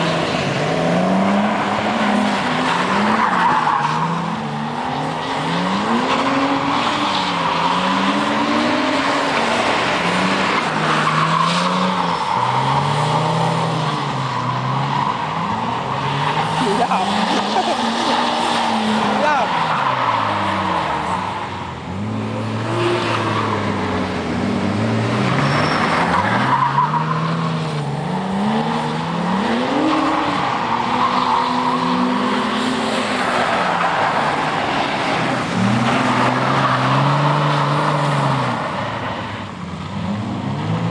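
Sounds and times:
tyre squeal and skidding: 0.0s - 23.9s, 25.0s - 39.5s
car engines revving: 0.0s - 40.9s.

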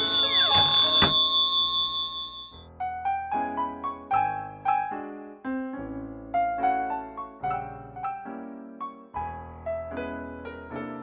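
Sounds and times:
ringing chime tones: 0.0s - 2.6s.

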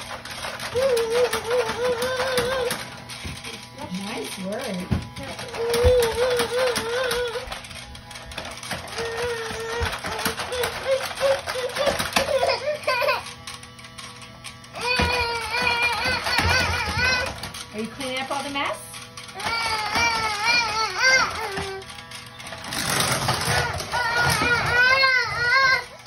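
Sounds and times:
toy vacuum clicking and rattling: 0.0s - 26.0s.

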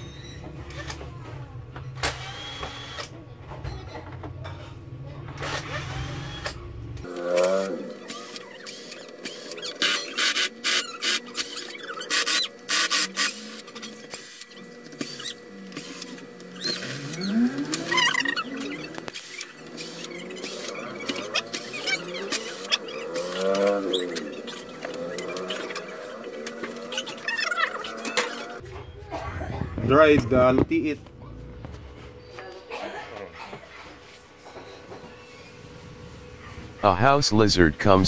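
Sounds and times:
cordless drill whirring: 2.0s - 3.1s, 5.4s - 6.6s, 8.1s - 28.6s.

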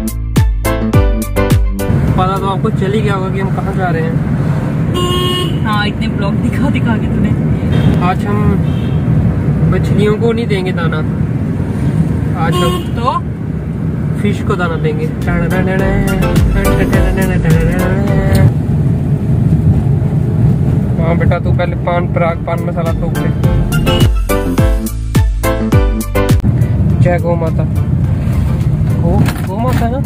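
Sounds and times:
car road and engine rumble: 0.8s - 30.0s
car horn toot: 4.9s - 5.8s, 7.7s - 9.1s, 12.4s - 13.1s.

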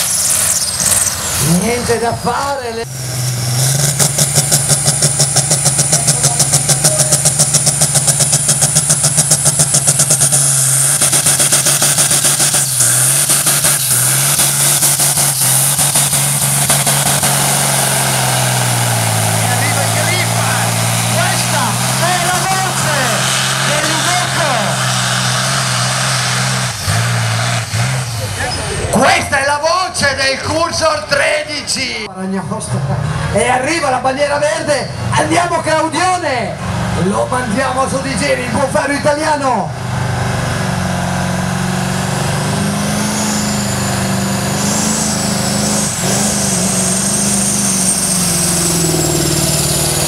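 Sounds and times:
truck diesel engine at high revs: 0.0s - 50.0s.

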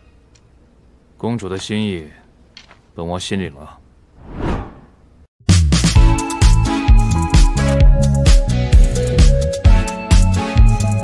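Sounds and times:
whoosh transition: 4.2s - 5.1s.

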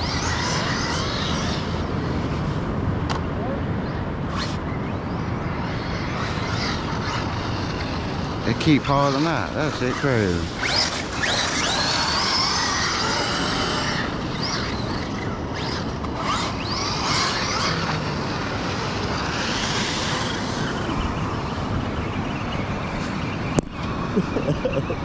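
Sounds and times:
electric motors whining: 0.0s - 2.8s, 3.8s - 25.0s.

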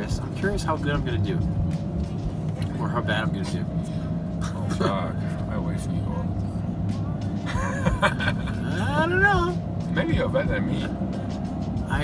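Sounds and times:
car engine and road hum: 0.0s - 12.0s.

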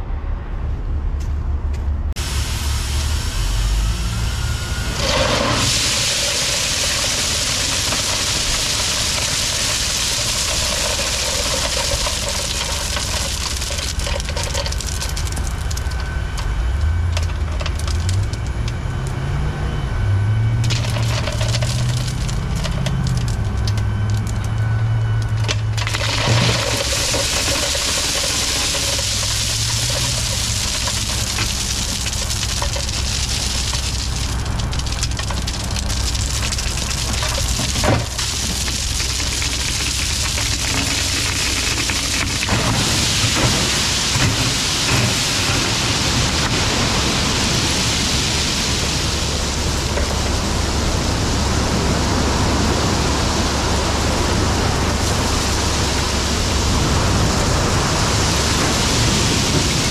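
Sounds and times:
diesel truck engine running: 0.0s - 59.9s
gravel pouring from trailer: 2.2s - 18.7s, 20.6s - 24.6s, 25.2s - 59.9s.

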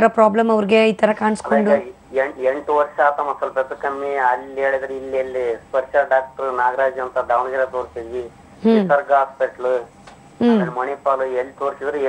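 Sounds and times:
person talking: 1.2s - 9.8s, 10.4s - 12.0s.

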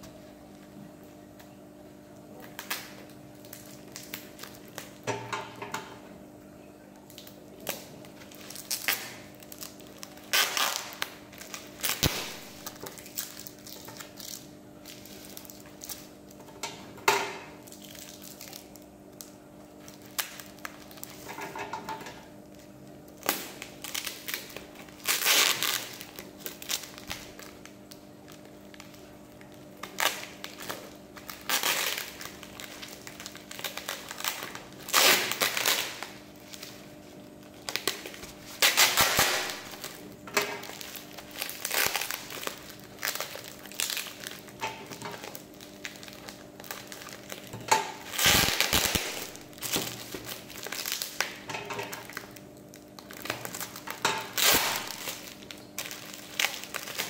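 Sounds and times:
bubble wrap crinkling: 2.3s - 5.1s, 7.0s - 57.0s.

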